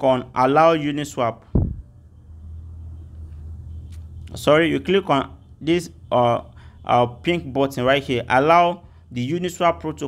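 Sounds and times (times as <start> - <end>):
low rumbling hum: 1.4 - 4.4.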